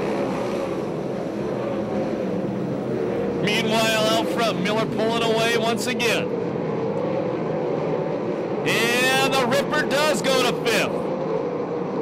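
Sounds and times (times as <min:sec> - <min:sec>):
racing car engines droning: 0:00.0 - 0:12.0.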